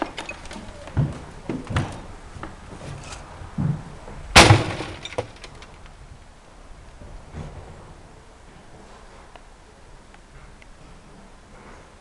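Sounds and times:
clatter of debris: 4.4s - 5.8s.

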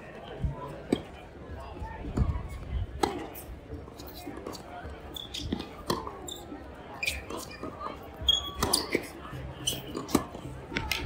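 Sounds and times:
faint voices murmuring: 0.0s - 11.0s
tennis ball bouncing on court: 2.1s - 6.2s, 7.0s - 11.0s
racket striking ball: 5.3s - 6.2s, 8.4s - 9.1s, 9.8s - 11.0s.

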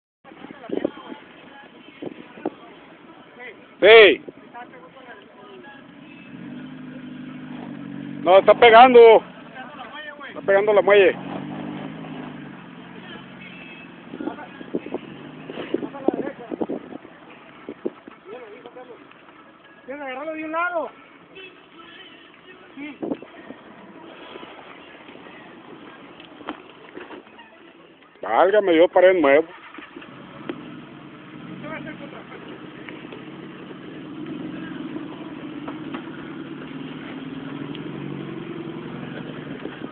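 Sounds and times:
outdoor background noise: 0.2s - 39.9s
off-road vehicle engine revving: 5.7s - 17.0s, 29.4s - 39.9s.

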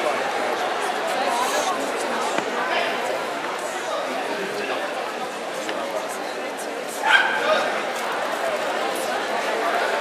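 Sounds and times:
crowd chatter in a hall: 0.0s - 10.0s
small dog barking: 7.0s - 7.4s.

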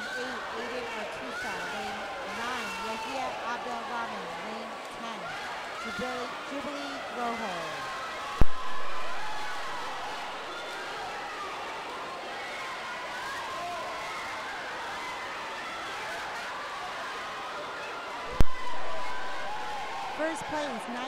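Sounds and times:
crowd shouting and cheering: 0.0s - 21.0s.

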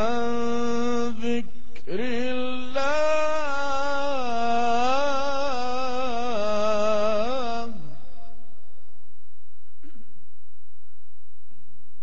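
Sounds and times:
man reciting melodically: 0.0s - 8.9s.

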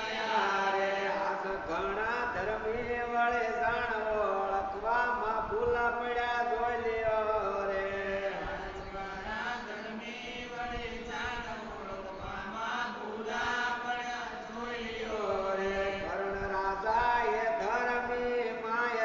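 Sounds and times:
voices chanting: 0.0s - 2.0s, 7.8s - 17.7s.

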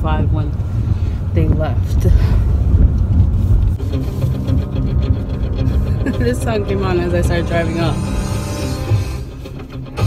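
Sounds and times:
car low rumble: 0.0s - 10.0s
song on car stereo: 3.8s - 10.0s.

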